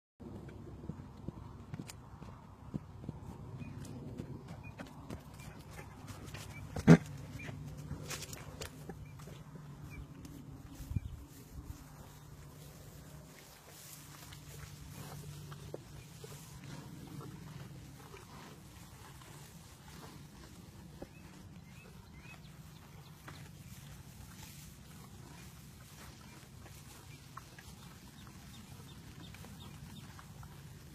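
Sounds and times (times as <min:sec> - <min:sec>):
low steady rumble: 0:00.2 - 0:30.9
horses chewing hay: 0:05.6 - 0:30.9
horse snorting: 0:06.1 - 0:08.2.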